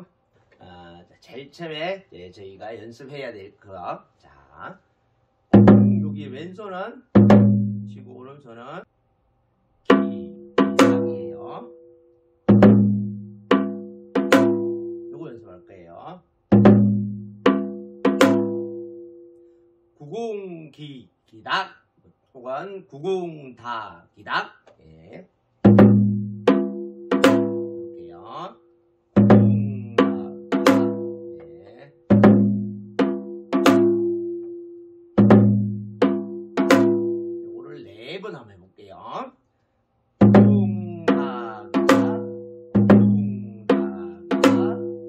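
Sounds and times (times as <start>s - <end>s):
hourglass drum struck with stick: 9.9s - 11.4s
person's voice: 29.4s - 30.4s, 31.4s - 32.0s, 37.6s - 39.3s, 40.4s - 42.2s, 42.9s - 44.9s.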